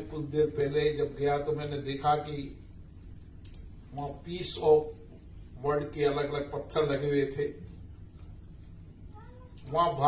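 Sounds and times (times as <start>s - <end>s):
man speaking over amplification: 0.0s - 2.6s, 3.9s - 7.6s.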